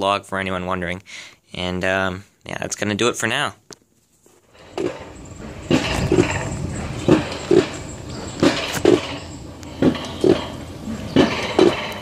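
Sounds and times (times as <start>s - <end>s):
sled clunks on metal track: 4.6s - 12.0s.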